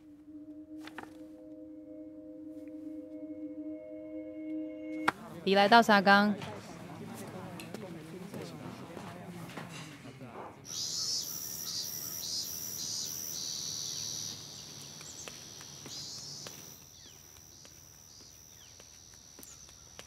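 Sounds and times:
pulsing insect chirp: 0.0 - 5.0, 10.7 - 20.0
high-pitched insect drone: 10.7 - 19.6
faint bird chirps: 10.7 - 19.9.

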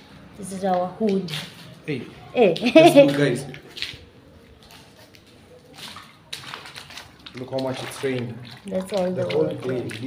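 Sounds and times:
feet splashing through water: 2.9 - 10.0.

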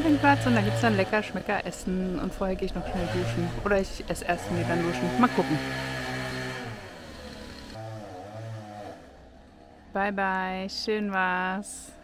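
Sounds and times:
vehicle engine running: 0.0 - 7.8.

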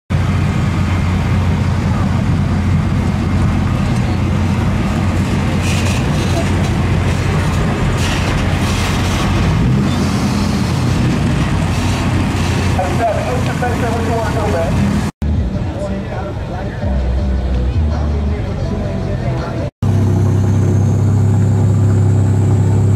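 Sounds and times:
truck engine rumbling: 0.1 - 22.9.

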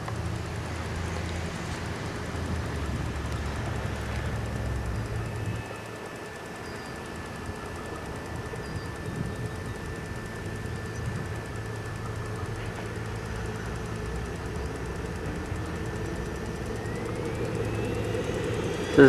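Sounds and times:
model helicopter engine whining: 0.0 - 19.0.

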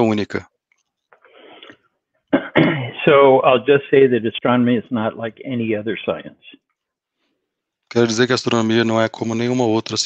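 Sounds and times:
man speaking: 0.0 - 0.6, 2.8 - 6.7, 7.8 - 10.0
muffled cough: 2.3 - 3.1.

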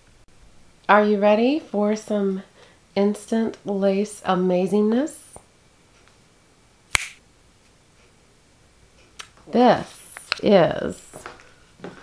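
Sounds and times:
finger snap: 6.9 - 7.2.

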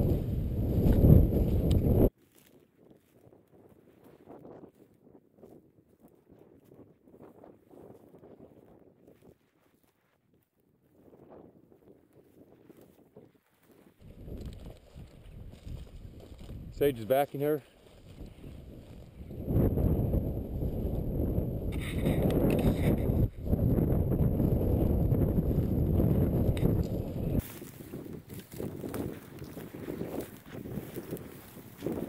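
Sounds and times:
wind buffeting microphone: 0.0 - 2.1, 11.0 - 32.0
footsteps through dry grass: 0.0 - 32.0.

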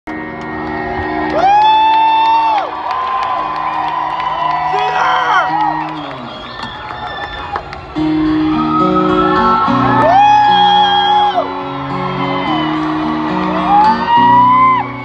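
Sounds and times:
crowd cheering and whooping: 0.2 - 15.0.

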